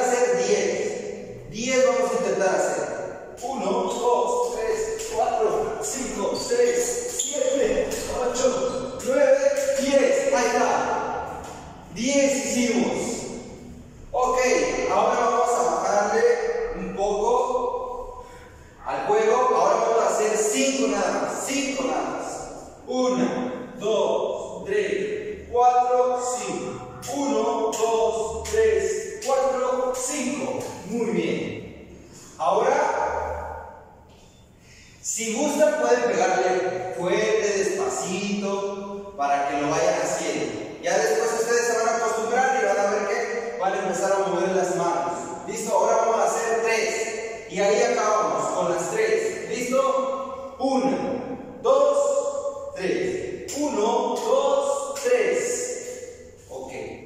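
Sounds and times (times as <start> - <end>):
man's voice held sound: 0.0 - 18.2, 18.8 - 31.6
man speaking: 0.0 - 34.2, 34.9 - 57.0.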